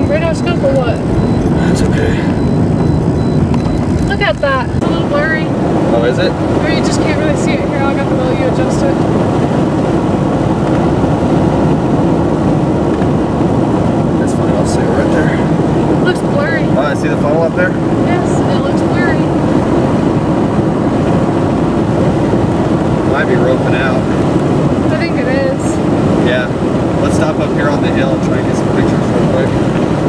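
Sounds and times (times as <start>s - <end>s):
wind in car cabin: 0.0s - 30.0s
tyre rumble inside car: 6.6s - 14.2s.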